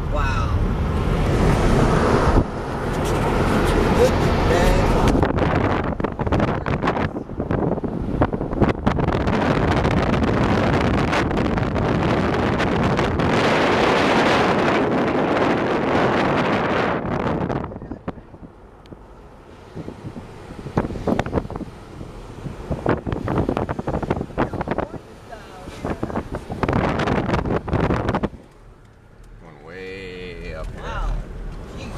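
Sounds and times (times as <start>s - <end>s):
road noise: 0.0s - 31.9s
wind buffeting microphone: 0.1s - 29.1s.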